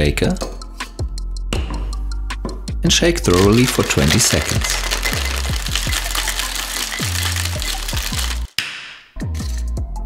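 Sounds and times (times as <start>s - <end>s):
background music with steady beat: 0.0s - 10.0s
ice rattling in cocktail shaker: 3.2s - 8.6s.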